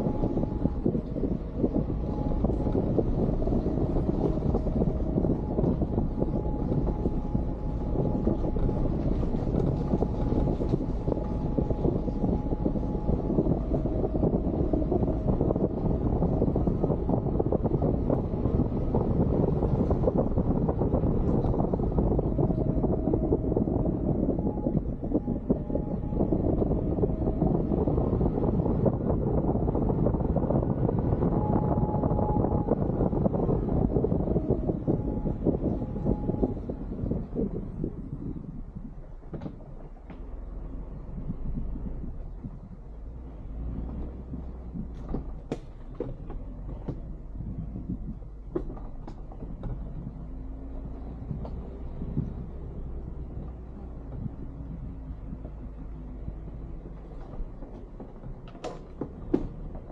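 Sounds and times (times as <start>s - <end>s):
car driving on gravel: 0.0s - 59.9s.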